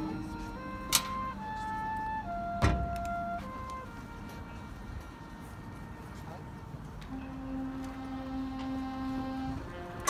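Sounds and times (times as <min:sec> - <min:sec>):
marching band held tones: 0:00.0 - 0:10.0.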